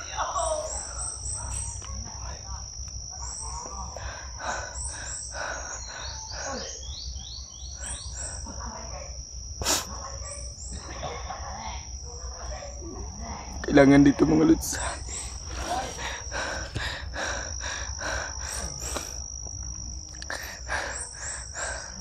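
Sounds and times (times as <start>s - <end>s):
insects high-pitched drone: 0.0s - 22.0s.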